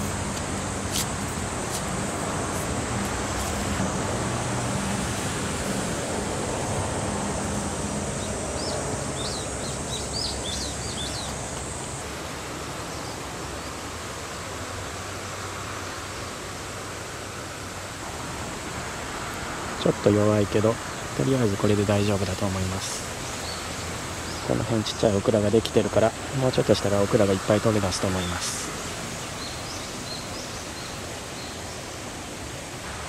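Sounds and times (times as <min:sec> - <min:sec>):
bird chirps: 0:08.2 - 0:11.4.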